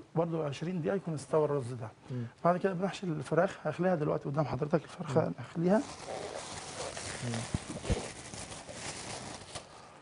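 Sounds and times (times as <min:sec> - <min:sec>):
food packaging crinkling and rustling: 0:05.7 - 0:09.9.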